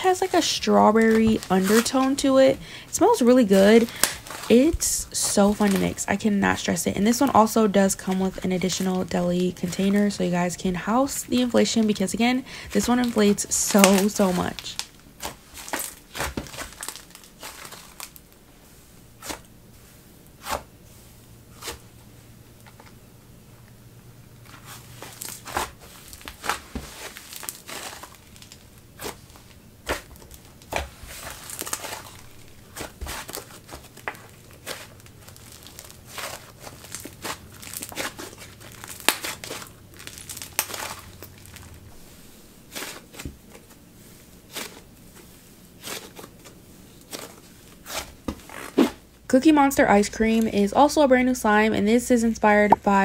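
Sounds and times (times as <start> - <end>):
clay slime squeezed crackling: 24.6 - 41.8.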